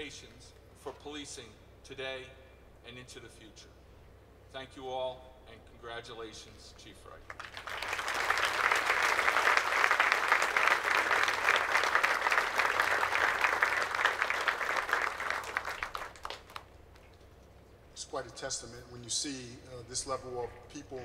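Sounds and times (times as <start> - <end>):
audience applauding: 7.3 - 16.7.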